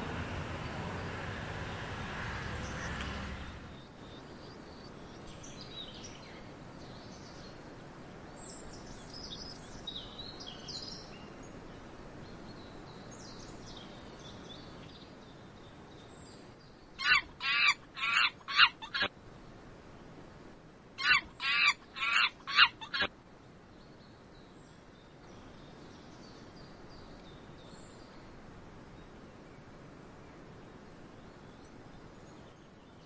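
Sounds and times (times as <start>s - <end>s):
monkeys calling: 17.0s - 19.1s, 21.0s - 23.1s.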